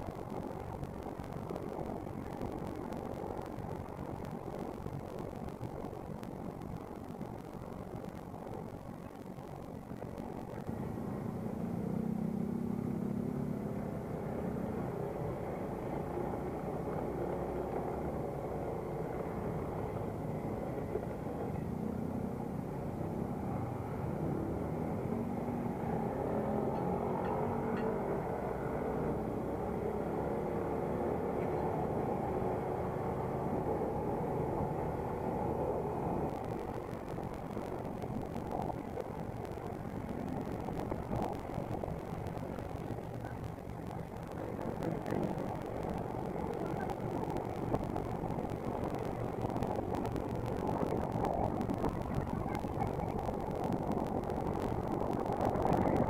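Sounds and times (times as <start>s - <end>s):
road and wind noise: 0.0s - 56.0s.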